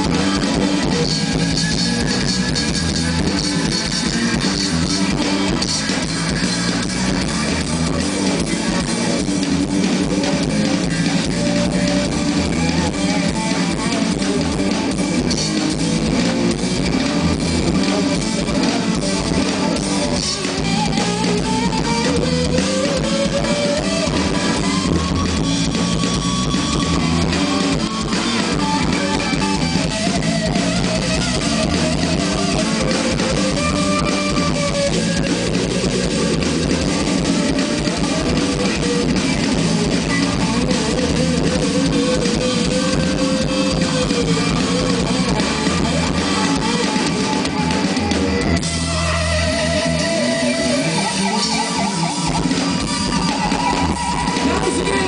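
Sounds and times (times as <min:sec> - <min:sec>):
bass guitar: 0:00.0 - 0:55.0
drum kit: 0:00.0 - 0:55.0
electric guitar lead melody: 0:00.0 - 0:55.0.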